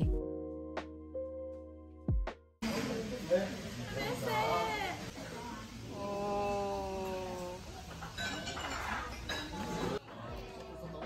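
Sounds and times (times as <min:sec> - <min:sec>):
restaurant room noise: 0:02.6 - 0:11.0
metal utensils clinking on pot: 0:07.8 - 0:10.0.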